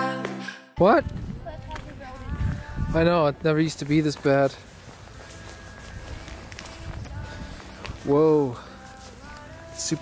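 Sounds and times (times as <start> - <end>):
footsteps on gravel and pebbles: 1.0 - 10.0.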